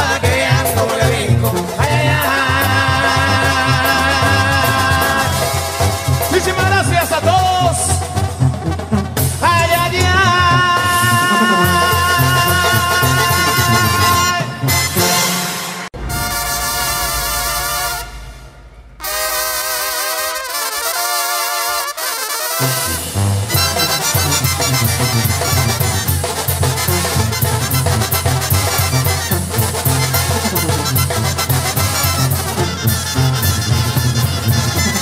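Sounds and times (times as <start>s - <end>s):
brass band music: 0.0s - 35.0s
tuba: 0.0s - 35.0s.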